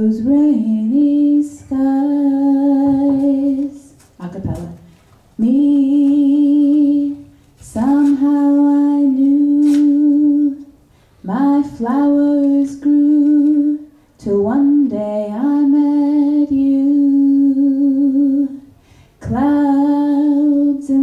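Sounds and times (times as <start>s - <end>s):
woman singing unaccompanied: 0.0s - 21.0s.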